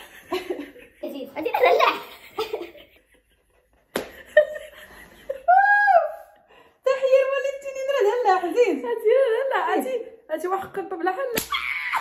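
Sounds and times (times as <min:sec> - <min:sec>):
women laughing: 0:00.0 - 0:06.4.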